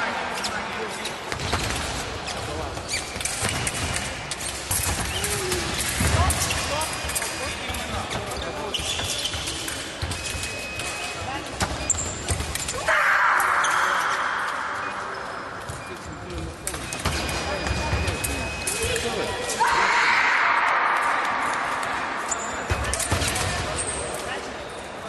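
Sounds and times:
shoe soles squeaking: 0.3 - 19.8.

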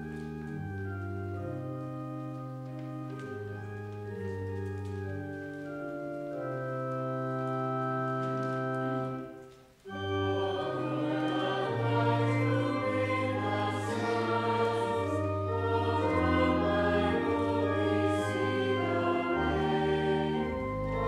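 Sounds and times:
organ chord: 0.0 - 21.0
voices singing a hymn with organ: 9.9 - 21.0.

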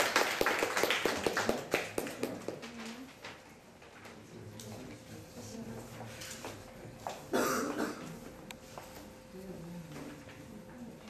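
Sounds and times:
audience clapping: 0.0 - 2.9.

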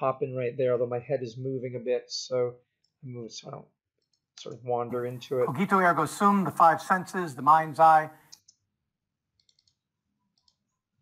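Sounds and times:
person speaking: 4.4 - 8.4.

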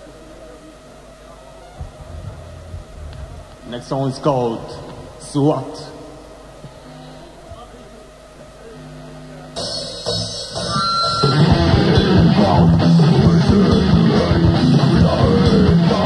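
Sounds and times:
held electric guitar notes: 1.6 - 5.3, 9.0 - 16.0
heavy rock band playing: 9.6 - 16.0.

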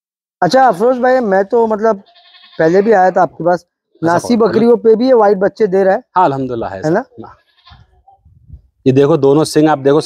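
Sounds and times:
men's voices: 0.4 - 2.0, 2.6 - 7.4, 8.8 - 10.0
goat bleating: 1.8 - 3.3, 6.8 - 8.1.

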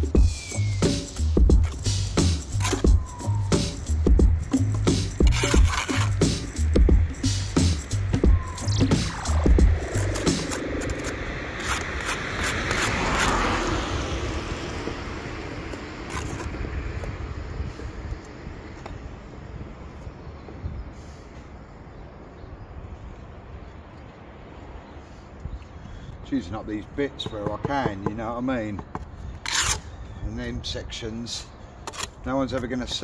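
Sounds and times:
vehicle passing: 9.4 - 18.7
trowel tapping on brick: 27.2 - 29.1.

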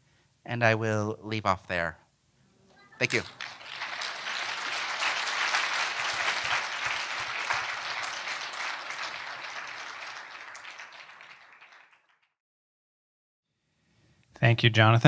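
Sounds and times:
audience applauding: 3.0 - 12.3.

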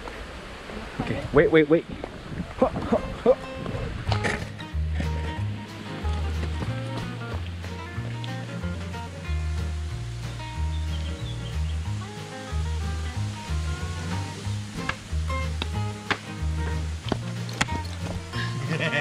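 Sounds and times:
background music: 3.2 - 19.0.

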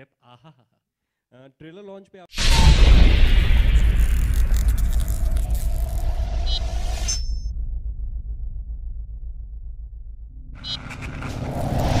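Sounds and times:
low pulsing rumble: 2.4 - 12.0
rising swell of noise: 7.7 - 12.0.

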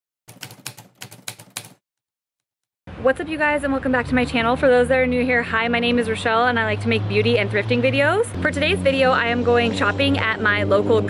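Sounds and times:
typewriter keys clacking: 0.3 - 1.8.

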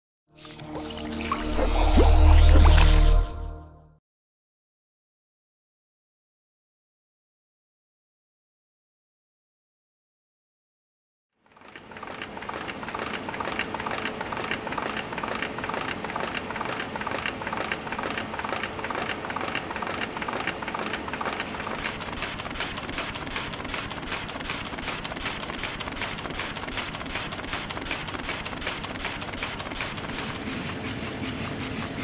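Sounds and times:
machinery rhythmic mechanical clatter: 11.5 - 32.0
fast hissing rhythmic pulse: 21.4 - 32.0.

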